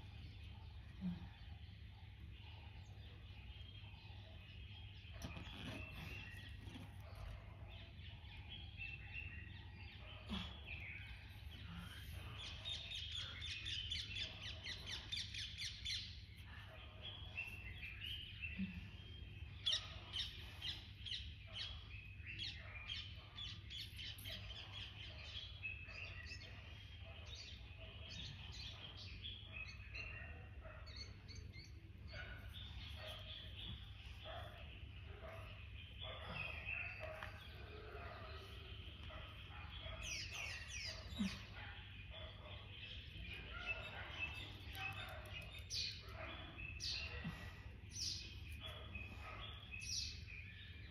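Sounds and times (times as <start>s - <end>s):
wild birds chirping and singing: 0.0s - 50.9s.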